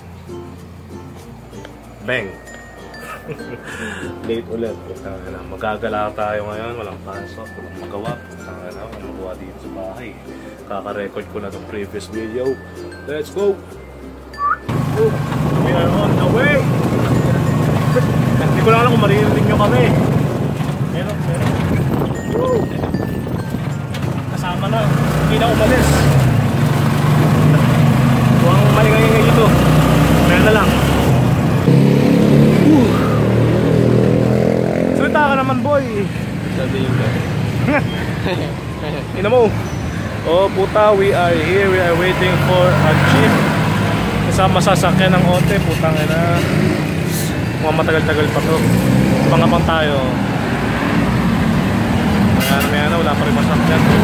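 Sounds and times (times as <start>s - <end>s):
people talking: 3.3s - 13.6s, 14.4s - 20.1s, 20.9s - 21.6s, 22.2s - 23.0s, 24.3s - 26.2s, 28.4s - 29.6s, 30.2s - 30.9s, 32.6s - 33.2s, 35.0s - 39.6s, 40.2s - 43.5s, 44.3s - 46.5s, 47.1s - 50.2s, 52.4s - 54.0s
vehicle engine running: 14.7s - 22.2s, 22.8s - 54.0s.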